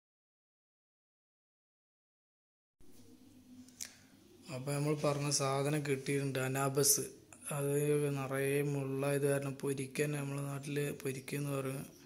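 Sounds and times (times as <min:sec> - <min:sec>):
man chanting: 0:04.5 - 0:12.0.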